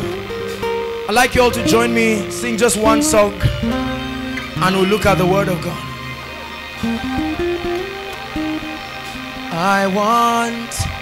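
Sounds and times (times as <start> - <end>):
guitar playing single notes: 0.0 - 11.0
held backing chord: 0.0 - 11.0.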